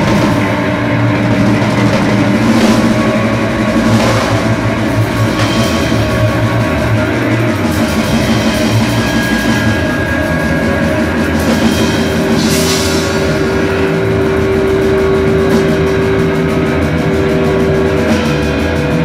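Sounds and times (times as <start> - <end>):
drum kit: 0.0 - 19.0
electric guitar: 0.0 - 19.0
rock band playing: 0.0 - 19.0.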